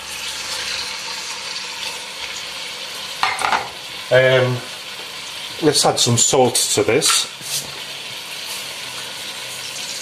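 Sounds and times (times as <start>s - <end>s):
chicken sizzling in hot oil: 0.0s - 10.0s.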